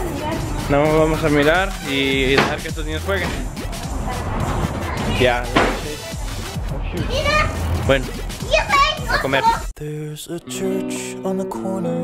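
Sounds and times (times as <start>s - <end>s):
children's voices playing: 0.0s - 1.9s, 3.2s - 7.8s, 8.4s - 9.7s
man speaking: 0.7s - 3.5s, 5.2s - 6.1s, 6.8s - 8.3s, 9.1s - 9.7s.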